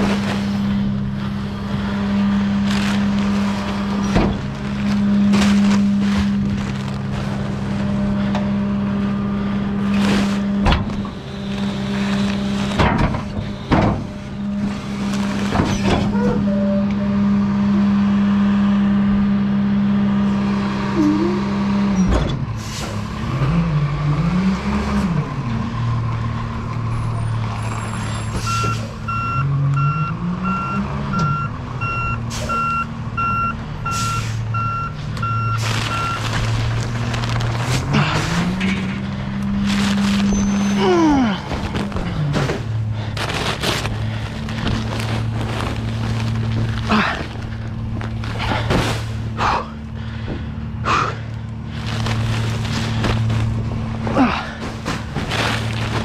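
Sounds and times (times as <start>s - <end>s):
diesel truck engine running: 0.0s - 56.0s
backup alarm beeping: 28.5s - 36.3s.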